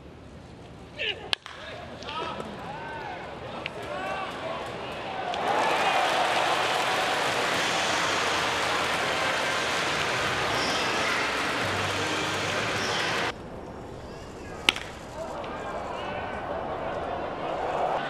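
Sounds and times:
stadium ambience: 0.0s - 18.0s
crowd applauding and cheering: 4.9s - 13.4s.

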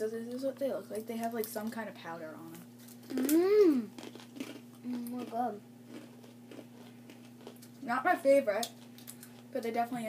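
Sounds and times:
steady hum: 0.0s - 10.0s
crisps being chewed: 2.8s - 7.8s, 8.6s - 9.5s.

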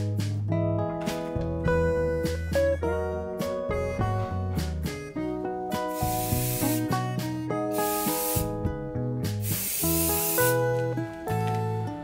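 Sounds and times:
background music: 0.0s - 12.0s
aerosol spray hissing: 5.9s - 7.0s, 7.7s - 8.6s, 9.3s - 10.7s.

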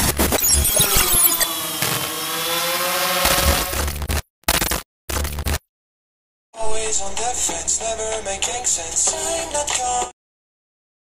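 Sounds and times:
motor-like whine rising in pitch: 0.4s - 3.8s.

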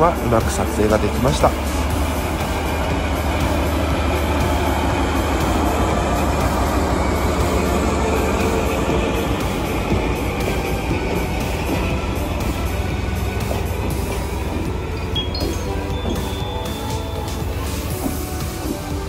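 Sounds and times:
background music: 0.0s - 19.0s
locomotive engine running under load: 0.0s - 19.0s
train wheels rolling over rails: 0.0s - 19.0s.

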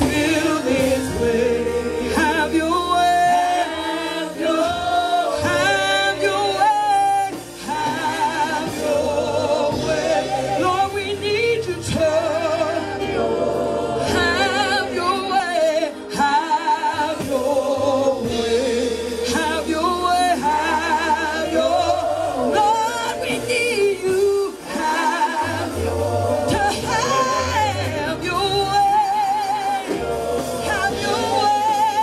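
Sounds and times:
gospel choir singing: 0.0s - 32.0s.

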